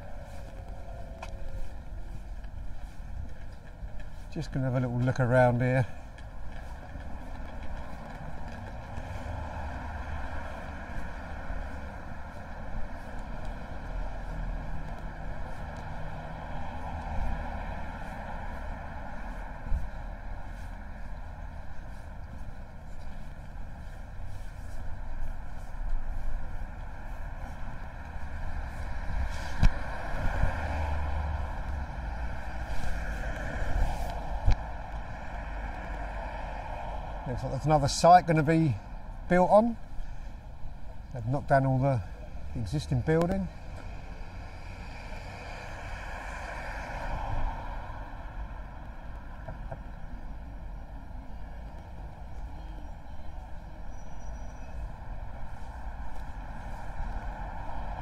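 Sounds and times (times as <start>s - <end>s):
road traffic hum: 0.0s - 58.0s.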